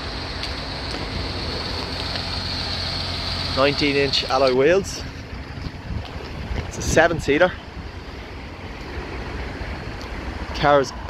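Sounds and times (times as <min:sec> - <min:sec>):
wind rumble on microphone: 0:04.9 - 0:11.0.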